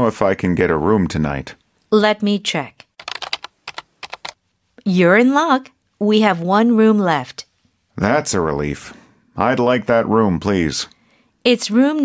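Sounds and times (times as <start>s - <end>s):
typing on a keyboard: 2.9s - 4.4s.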